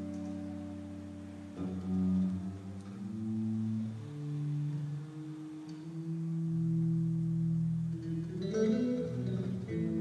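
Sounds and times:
electric bass low notes: 0:00.0 - 0:10.0.

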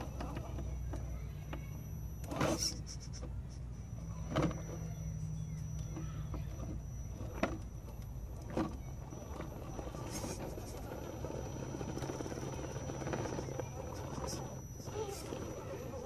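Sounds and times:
toy truck motor humming: 0:00.0 - 0:16.0.

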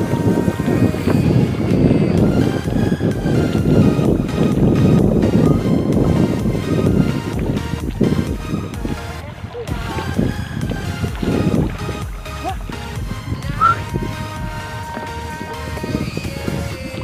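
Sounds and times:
background music: 0:00.0 - 0:17.0
low wind: 0:00.0 - 0:17.0
sea noise: 0:00.0 - 0:17.0.

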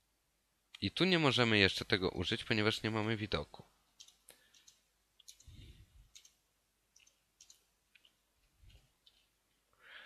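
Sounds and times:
keyboard typing clicks: 0:04.0 - 0:05.5, 0:06.1 - 0:06.4, 0:07.0 - 0:09.3.

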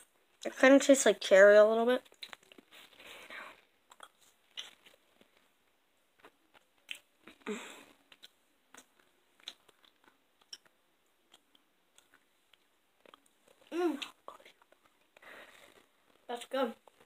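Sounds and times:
chewing gummy snack: 0:02.0 - 0:05.4, 0:06.2 - 0:17.0
wet mouth clicks and smacks: 0:02.1 - 0:02.7, 0:03.9 - 0:05.0, 0:08.1 - 0:10.7.

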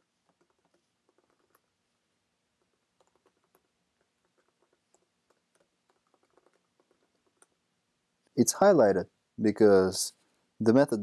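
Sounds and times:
faint keyboard typing: 0:00.0 - 0:01.8, 0:02.6 - 0:07.6.

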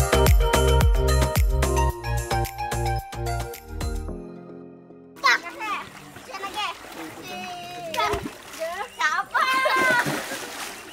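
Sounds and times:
children splashing in water: 0:05.2 - 0:10.9
children calling out: 0:08.8 - 0:10.2.

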